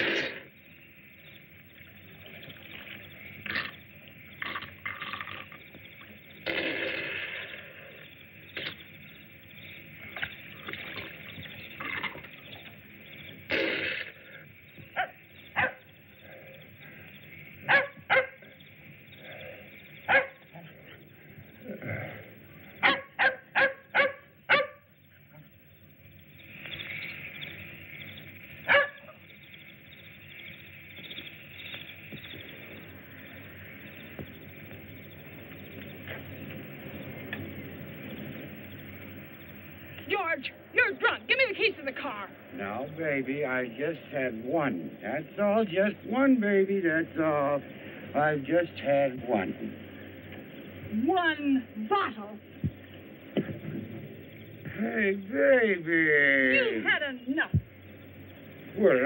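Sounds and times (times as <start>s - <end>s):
film soundtrack hiss: 0.0s - 59.0s
dog barking: 15.0s - 15.9s, 17.6s - 18.5s, 20.1s - 20.4s, 22.8s - 24.9s, 28.6s - 29.2s.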